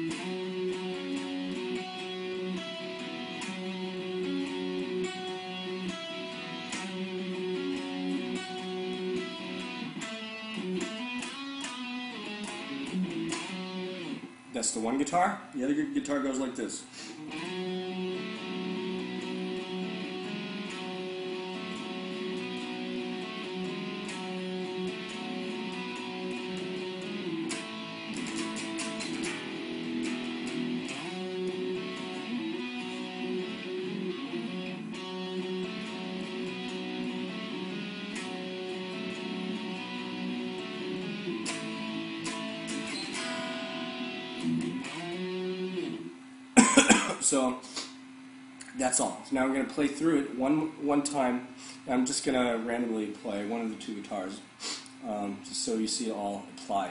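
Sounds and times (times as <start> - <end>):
guitar playing ringing notes: 0.0 - 14.9, 15.7 - 47.5.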